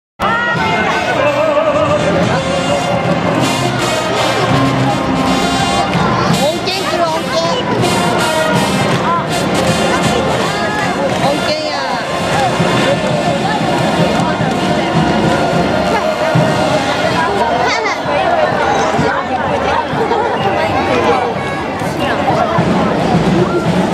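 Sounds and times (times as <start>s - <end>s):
brass parade music: 0.2s - 23.9s
crowd chatter: 0.2s - 23.9s.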